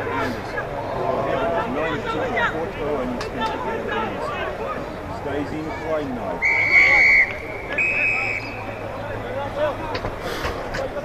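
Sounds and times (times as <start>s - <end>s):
spectators chattering and calling out: 0.0s - 11.0s
whistle blasts: 6.4s - 8.7s.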